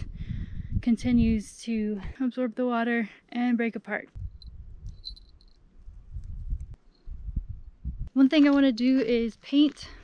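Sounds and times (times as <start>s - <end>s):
wind buffeting microphone: 0.0s - 2.2s, 4.1s - 10.0s.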